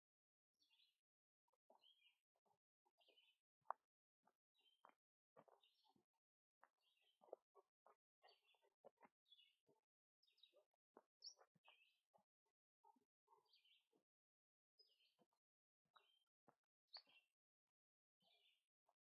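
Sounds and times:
faint bird chirps: 0.6s - 17.5s, 18.1s - 19.0s.

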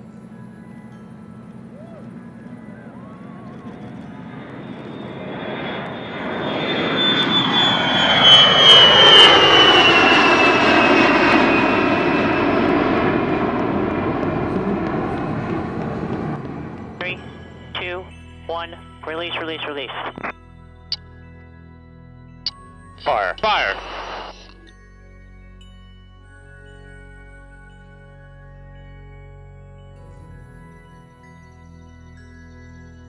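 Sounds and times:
jet whine falling in pitch: 0.0s - 21.0s, 23.0s - 24.7s
jet engines roaring: 2.0s - 20.3s, 23.0s - 24.7s.

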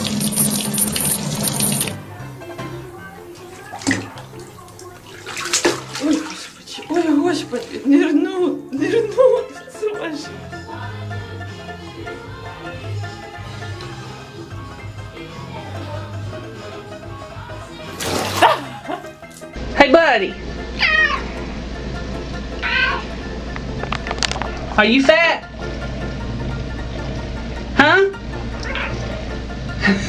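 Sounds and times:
bathwater splashing: 0.0s - 2.0s, 3.4s - 8.2s, 17.8s - 19.6s
cat crying: 20.8s - 21.4s, 22.6s - 23.2s, 28.6s - 29.0s
loud cat meow: 20.8s - 21.4s, 22.6s - 23.1s, 28.6s - 29.0s.

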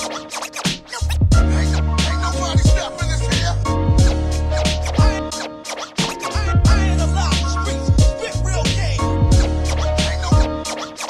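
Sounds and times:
hip hop instrumental beat: 0.0s - 11.0s
turntable scratching: 0.0s - 11.0s.

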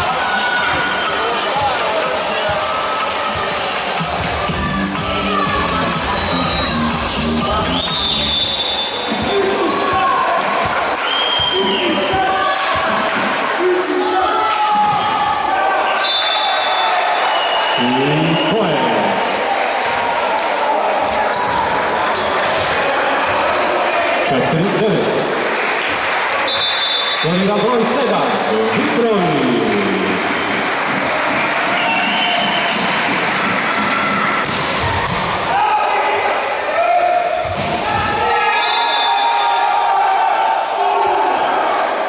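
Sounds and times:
people shouting: 0.0s - 7.9s, 9.0s - 17.3s, 31.1s - 42.0s
referee whistle: 7.7s - 9.0s, 11.0s - 12.0s, 15.9s - 18.8s, 26.5s - 27.6s, 38.3s - 39.7s.

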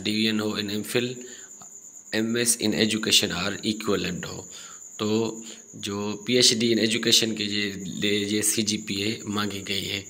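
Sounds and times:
man speaking: 0.0s - 1.4s, 2.1s - 10.0s.

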